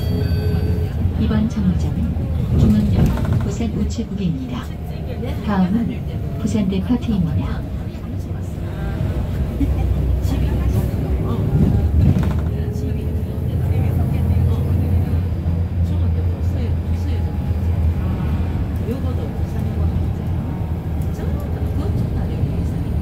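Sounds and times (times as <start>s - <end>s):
bus engine drone: 0.0s - 23.0s.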